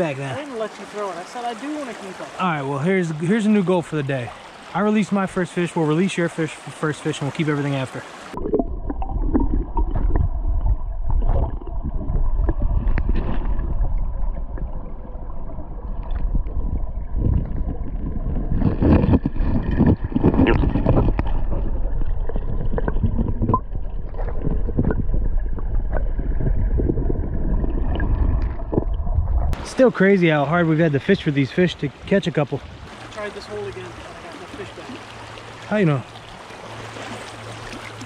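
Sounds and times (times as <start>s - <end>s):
muffled underwater current rush: 7.9s - 29.7s
underwater knocks and clicks: 8.4s - 29.6s.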